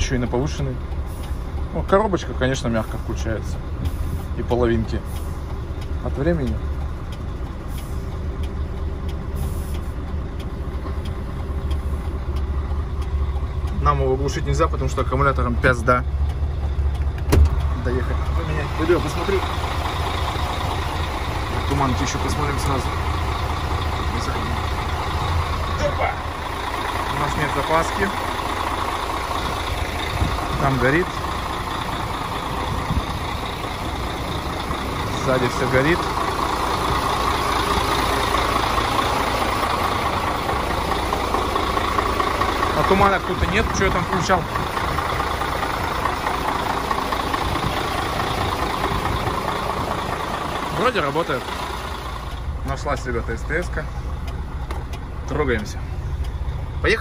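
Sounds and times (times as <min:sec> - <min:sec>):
diesel truck engine idling: 0:00.0 - 0:57.0
faint clicks: 0:04.8 - 0:13.9, 0:16.0 - 0:18.4, 0:51.6 - 0:56.7.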